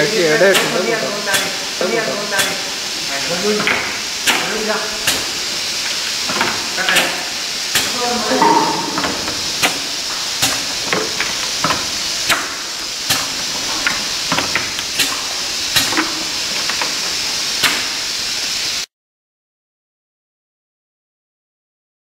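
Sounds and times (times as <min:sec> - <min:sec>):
capping machine hissing: 0:00.0 - 0:18.9.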